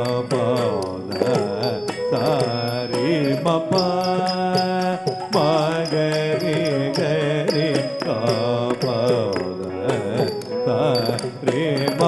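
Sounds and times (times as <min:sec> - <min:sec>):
person singing ornamented notes: 0:00.0 - 0:12.0
steady percussion strokes: 0:00.0 - 0:12.0.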